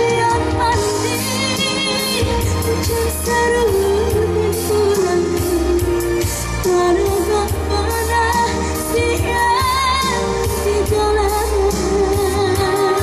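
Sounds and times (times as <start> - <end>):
amplified band accompaniment: 0.0 - 13.0
woman singing into a microphone: 0.0 - 13.0.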